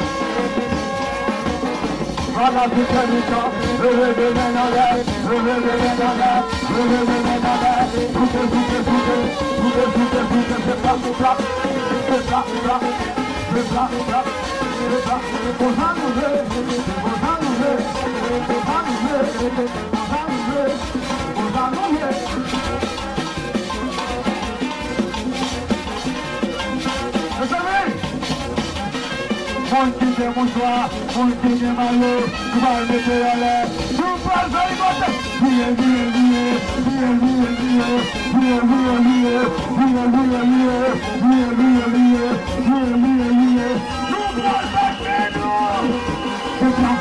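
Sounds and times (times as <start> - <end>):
voices: 0.0 - 28.2, 28.9 - 47.0
dense percussion beat: 0.0 - 47.0.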